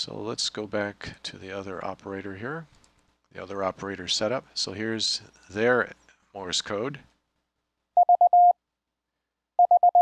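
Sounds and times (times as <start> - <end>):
morse code beeps: 8.0 - 8.6, 9.6 - 10.0.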